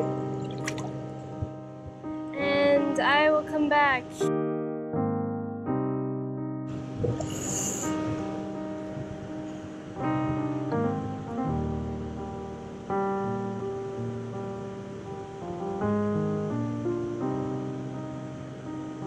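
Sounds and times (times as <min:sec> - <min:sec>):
slow piano music: 0:00.0 - 0:19.0
brief hiss: 0:07.0 - 0:08.3.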